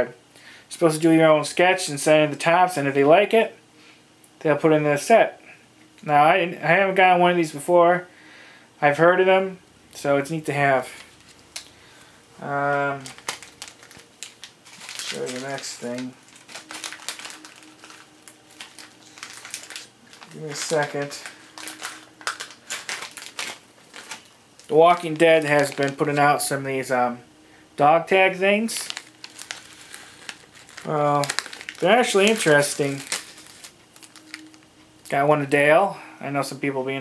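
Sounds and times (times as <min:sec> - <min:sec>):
packaging crinkling and rustling: 0:10.0 - 0:26.9, 0:28.6 - 0:35.1.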